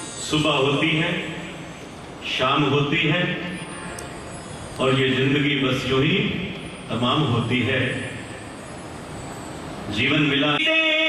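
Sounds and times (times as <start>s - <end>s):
steady hiss and rumble: 0.0s - 11.0s.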